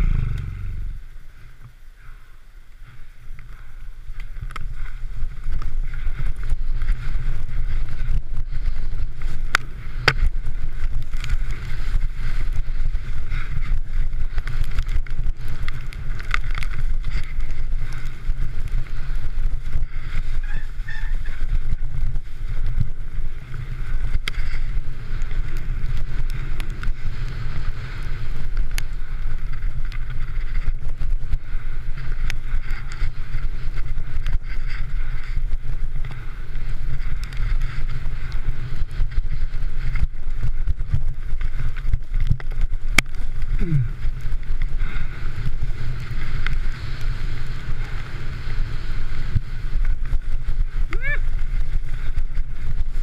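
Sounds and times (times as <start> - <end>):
bike rattling: 0.0 - 53.0
bike knocking on bumps: 4.1 - 53.0.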